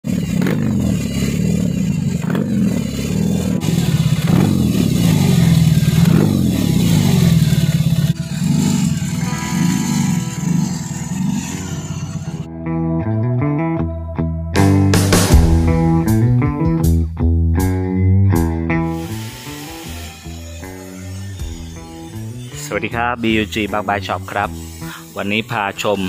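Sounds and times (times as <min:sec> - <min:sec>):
motorcycle engine revving: 0:00.0 - 0:12.5, 0:18.4 - 0:26.0.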